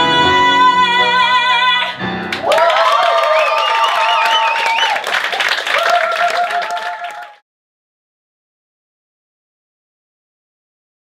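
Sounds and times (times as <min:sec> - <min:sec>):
audience applause and cheers: 0:02.3 - 0:07.4.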